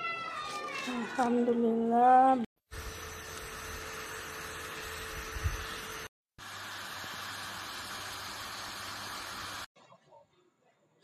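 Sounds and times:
faint motor hum: 2.7s - 9.7s
neck fan whirring: 2.7s - 9.7s.

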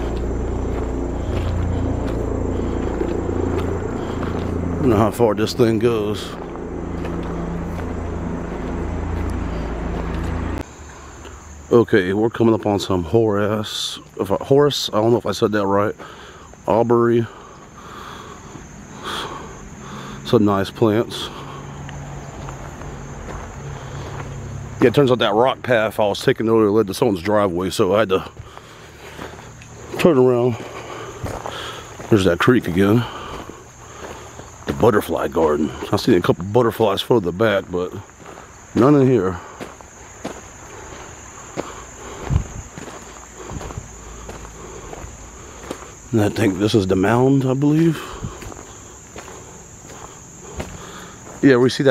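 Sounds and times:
footsteps on gravel: 0.0s - 11.4s, 13.9s - 51.9s
insects chirring: 0.0s - 51.9s.

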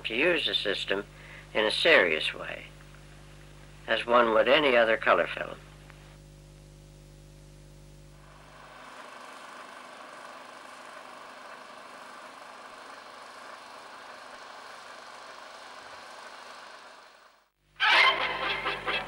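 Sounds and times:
film projector running: 0.0s - 17.5s.

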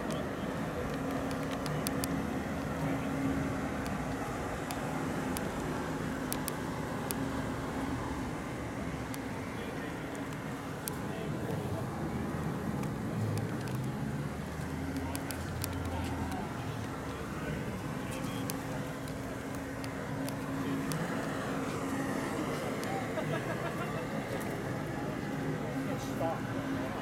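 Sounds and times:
people talking: 0.0s - 4.4s, 9.3s - 27.0s
vehicle engine hum: 0.0s - 27.0s.

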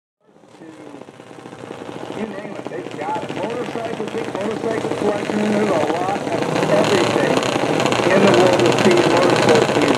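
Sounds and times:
small engine idling: 0.2s - 9.9s.

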